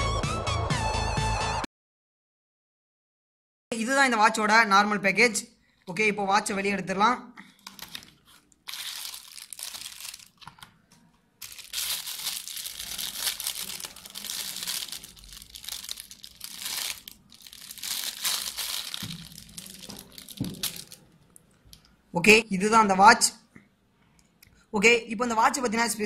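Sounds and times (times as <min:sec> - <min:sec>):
plastic bag crinkling: 0:07.5 - 0:21.8.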